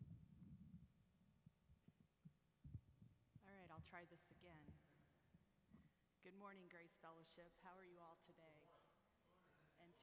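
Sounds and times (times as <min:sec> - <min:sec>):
muffled low thumps: 0:02.6 - 0:04.8.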